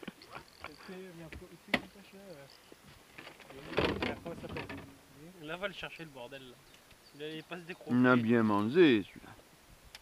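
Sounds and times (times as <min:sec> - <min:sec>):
men talking quietly: 0:00.0 - 0:09.5.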